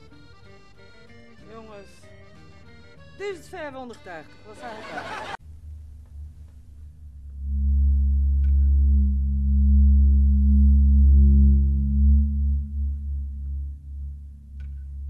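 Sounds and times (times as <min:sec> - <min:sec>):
low dark film score drone: 0:05.4 - 0:15.0.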